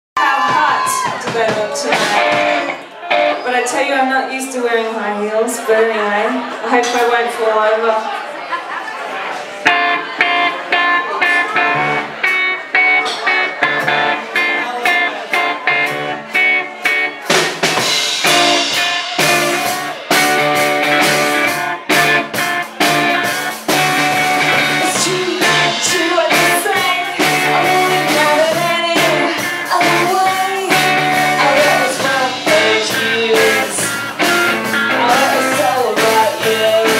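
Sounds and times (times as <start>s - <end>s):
bass guitar: 0.2s - 3.5s, 9.6s - 36.9s
drums: 0.2s - 5.9s, 9.6s - 36.9s
electric guitar strumming chords: 1.3s - 3.5s, 9.6s - 36.9s.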